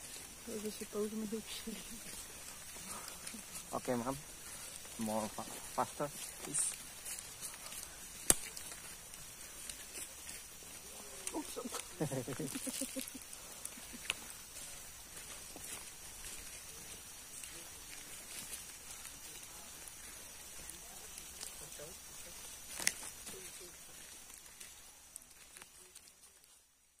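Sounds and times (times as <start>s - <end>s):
faint rustles on trail: 0.0s - 27.0s
insect hiss: 0.0s - 27.0s.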